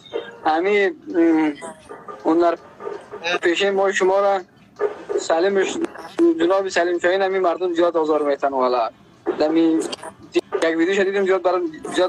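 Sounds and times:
man talking: 0:00.4 - 0:02.6, 0:03.2 - 0:04.5, 0:05.1 - 0:12.0.

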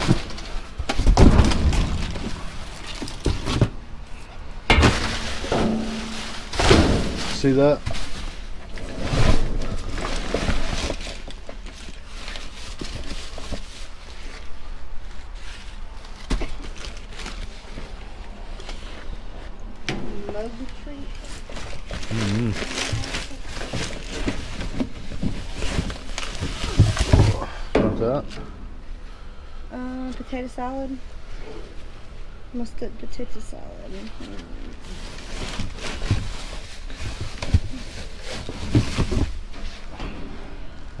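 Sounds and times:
cardboard boxes shifting: 0:00.0 - 0:14.5, 0:21.1 - 0:27.7, 0:34.2 - 0:40.3
plastic bags crinkling: 0:21.2 - 0:27.4.

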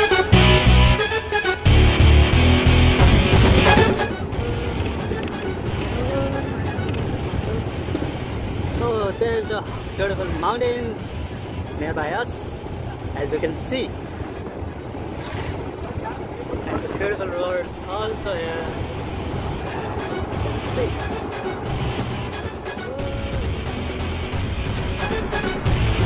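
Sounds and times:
rushing wind: 0:00.0 - 0:26.0
bus engine and road rumble: 0:01.7 - 0:26.0
faint music: 0:03.6 - 0:26.0.

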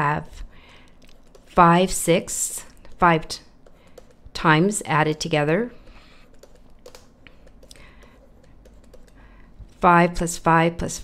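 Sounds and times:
stylus tapping and scratching: 0:00.6 - 0:04.8, 0:05.8 - 0:09.9.

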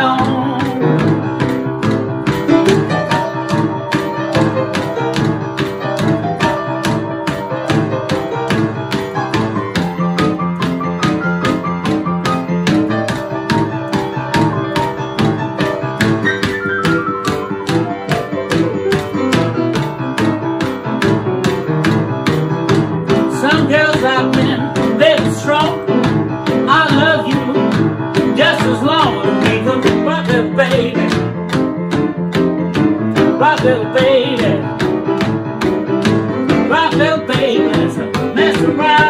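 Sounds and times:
rhythm and blues piano: 0:00.0 - 0:39.0
sharp ticks keeping time: 0:00.0 - 0:39.0.

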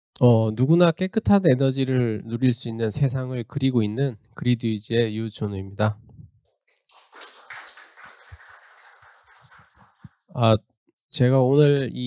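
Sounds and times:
audience clapping: 0:06.7 - 0:10.2.

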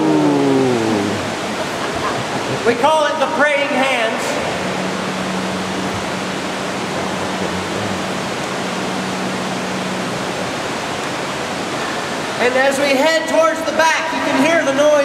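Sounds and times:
low hum: 0:00.0 - 0:12.5
water rushing over dam: 0:00.0 - 0:15.0.

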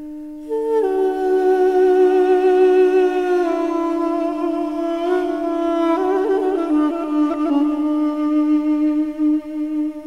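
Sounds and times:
duduk drone: 0:00.0 - 0:10.0
duduk melody: 0:00.0 - 0:10.0.

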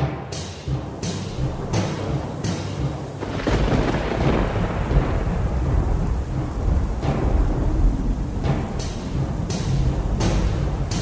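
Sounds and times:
rain: 0:00.0 - 0:11.0
thunder crack and rumble: 0:00.7 - 0:11.0.

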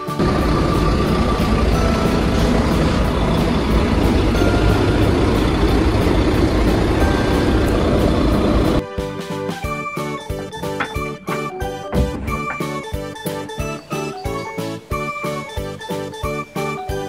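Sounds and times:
large vehicle engine running: 0:00.0 - 0:08.8.

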